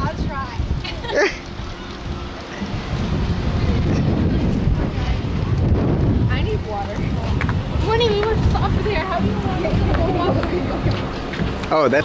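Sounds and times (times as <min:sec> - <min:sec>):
faint voices: 0:00.0 - 0:12.0
wind buffeting microphone: 0:00.0 - 0:12.0.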